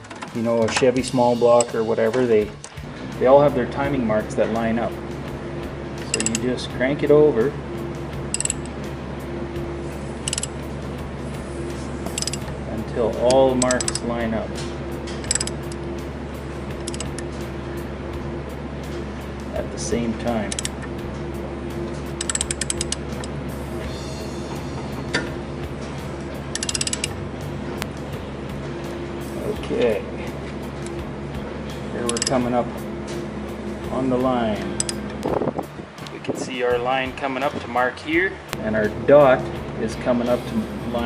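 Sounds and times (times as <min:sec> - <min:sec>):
low steady hum: 0:00.0 - 0:41.0
ratchet wrench clicking: 0:06.0 - 0:06.4, 0:08.3 - 0:08.8, 0:10.2 - 0:10.6, 0:12.1 - 0:12.5, 0:13.2 - 0:14.1, 0:15.1 - 0:15.9, 0:16.8 - 0:17.3, 0:20.4 - 0:20.8, 0:22.1 - 0:23.4, 0:26.5 - 0:27.2, 0:32.0 - 0:32.4, 0:34.8 - 0:35.0.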